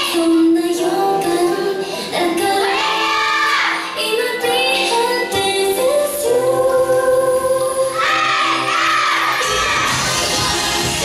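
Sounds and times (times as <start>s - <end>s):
pop music: 0.0s - 11.0s
girls shouting and cheering: 2.2s - 3.8s, 7.9s - 11.0s.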